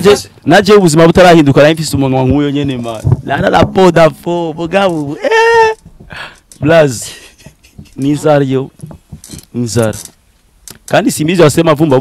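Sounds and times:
man exclaiming: 5.0s - 5.8s.

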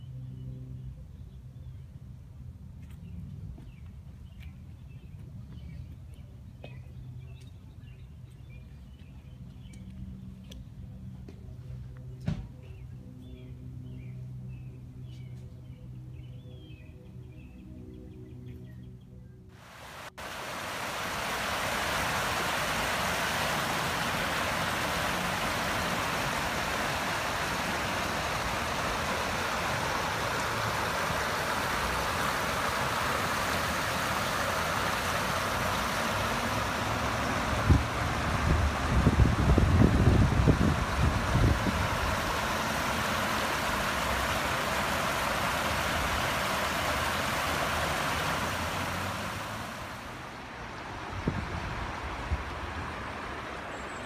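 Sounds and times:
creek water rushing over rocks: 19.6s - 54.0s
low rumbling on microphone: 35.8s - 43.9s.

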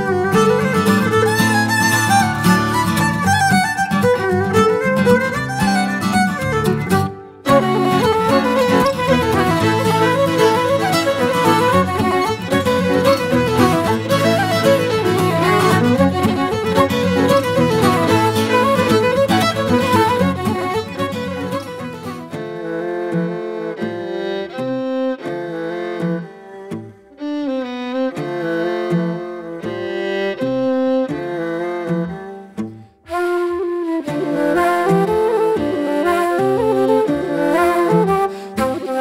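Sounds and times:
fiddle-led ensemble playing: 0.0s - 39.0s
wooden flute tune: 0.0s - 39.0s.

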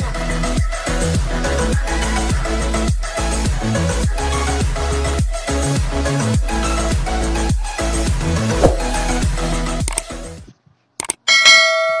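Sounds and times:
bright bell ding: 11.3s - 12.0s.

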